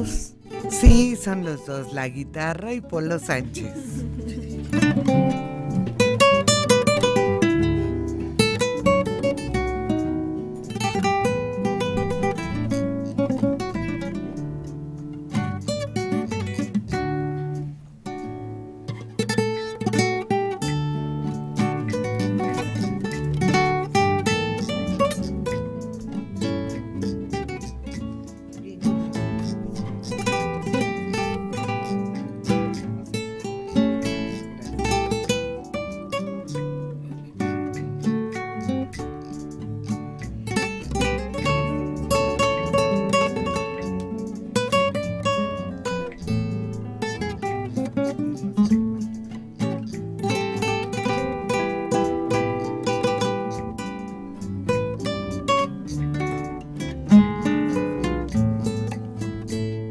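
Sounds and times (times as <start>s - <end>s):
two acoustic guitars playing: 0.0s - 59.9s.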